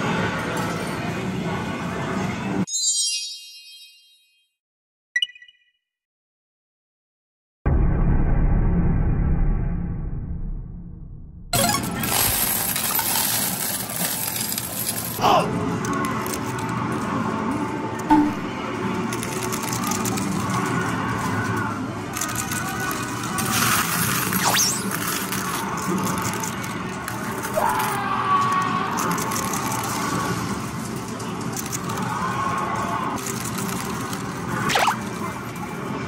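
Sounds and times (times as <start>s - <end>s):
coin-pusher game machine running: 11.6s - 27.6s, 33.2s - 36.0s
music: 14.4s - 24.3s.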